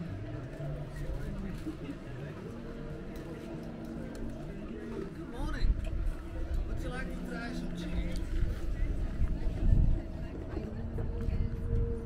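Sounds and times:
low hum and rumble: 0.0s - 12.0s
people talking: 0.7s - 12.0s.

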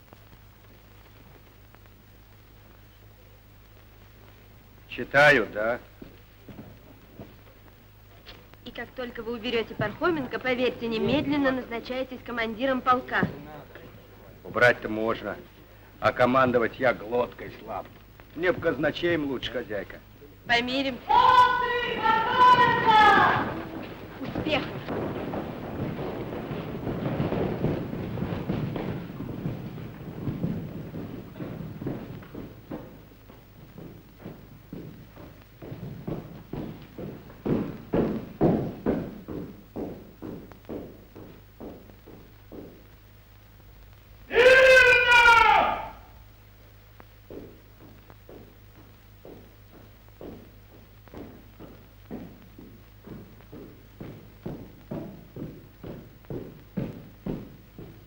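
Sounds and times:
low steady soundtrack hum: 0.0s - 58.0s
boots tramping on hall floor: 5.9s - 8.6s, 20.9s - 45.8s, 47.0s - 58.0s
footsteps on hard floor: 6.0s - 8.6s, 21.1s - 43.1s, 47.0s - 58.0s
loud drawn-out shouted call: 21.0s - 23.8s, 44.3s - 46.1s.

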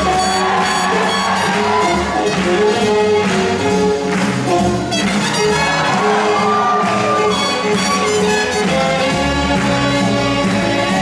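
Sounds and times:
swing jazz music: 0.0s - 11.0s.

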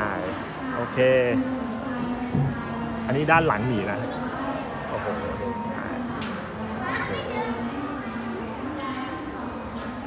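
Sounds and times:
children chattering: 0.6s - 10.0s.

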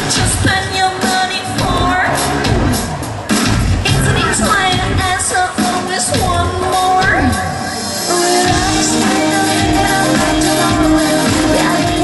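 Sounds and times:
keyboard: 0.0s - 12.0s
live rock band playing: 1.5s - 12.0s.

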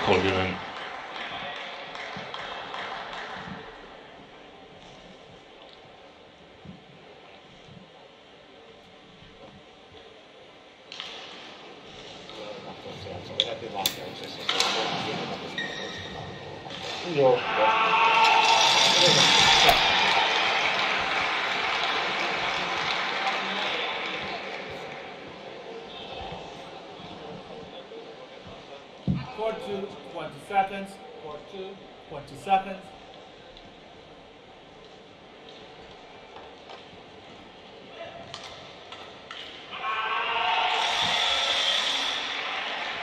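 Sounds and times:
voices echoing in a hall: 0.0s - 43.0s.

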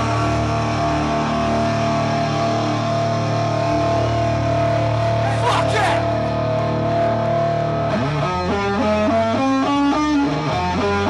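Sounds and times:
bass guitar: 0.0s - 11.0s
distorted electric guitar: 0.0s - 11.0s.

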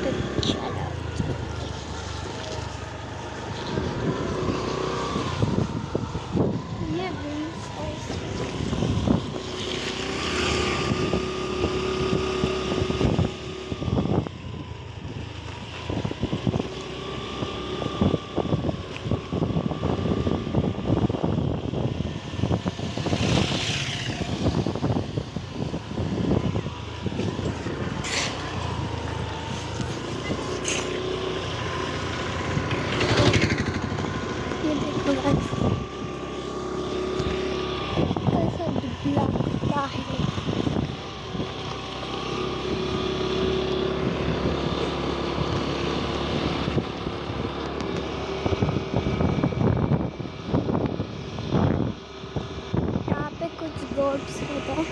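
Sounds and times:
vehicle engine running: 0.0s - 54.9s
wind buffeting microphone: 0.0s - 54.9s.

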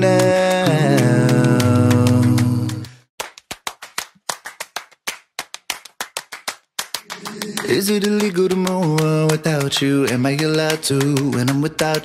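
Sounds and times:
rhythmic syncopated hand claps: 0.0s - 12.0s.

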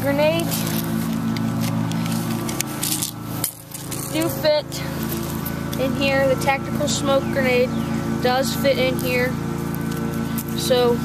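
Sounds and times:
small engine droning: 0.0s - 11.0s.

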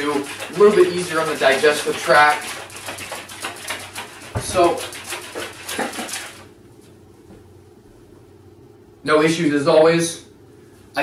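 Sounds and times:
plastic shaker bottle shaking: 0.0s - 6.5s
low room hum: 0.0s - 11.0s.

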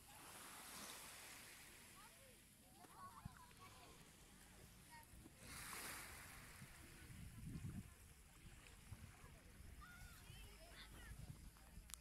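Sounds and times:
faint wind rumble on microphone: 3.1s - 12.0s.

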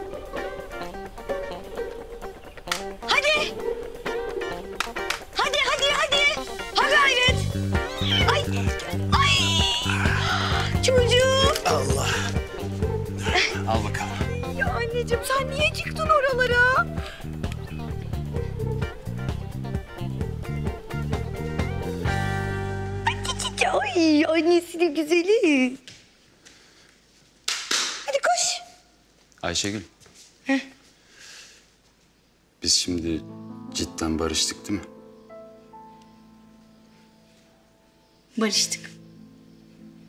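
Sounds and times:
cat mewing: 3.0s - 4.6s, 5.4s - 12.6s.

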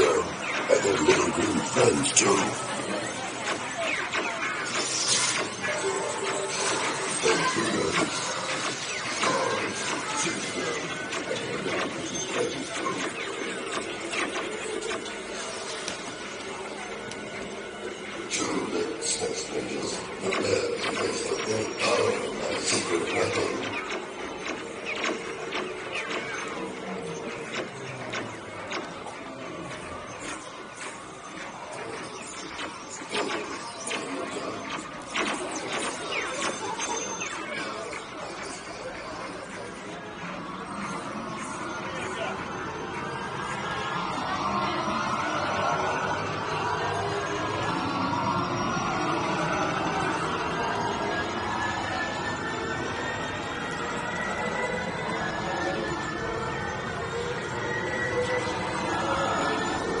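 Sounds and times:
laser blaster clicks and zaps: 0.0s - 17.4s, 19.9s - 39.7s
ride effects audio: 0.0s - 60.0s
ride vehicle running on track: 0.0s - 60.0s
ride car noise: 34.8s - 60.0s.

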